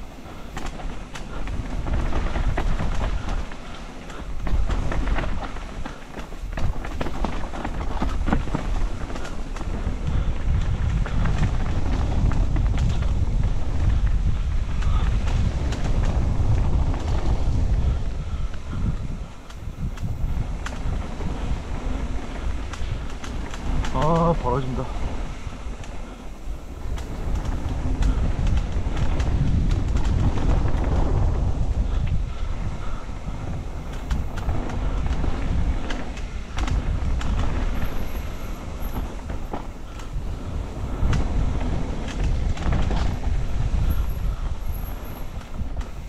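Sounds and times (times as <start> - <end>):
bike rattling and clicking: 0.0 - 46.0
bike tyres on dirt: 0.0 - 46.0
wind rumbling on microphone: 0.0 - 46.0.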